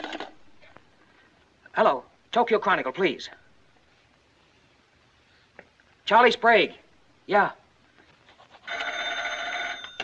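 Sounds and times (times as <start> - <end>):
desk telephone bell ringing: 8.6 - 10.0.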